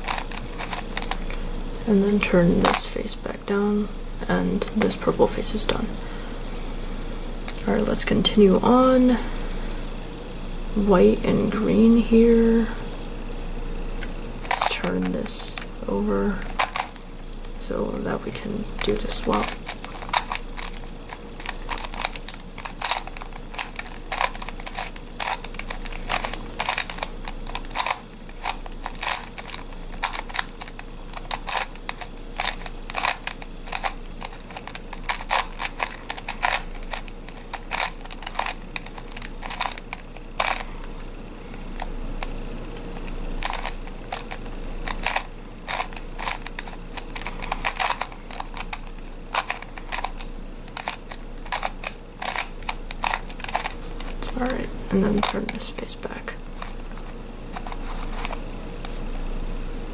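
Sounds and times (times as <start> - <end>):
plastic puzzle layers clicking: 18.8 - 40.6, 43.4 - 54.1.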